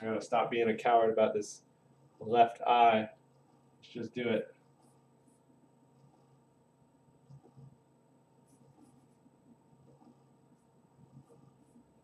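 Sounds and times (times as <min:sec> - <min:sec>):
charcoal scratching on paper: 0:04.5 - 0:06.5, 0:07.2 - 0:12.0.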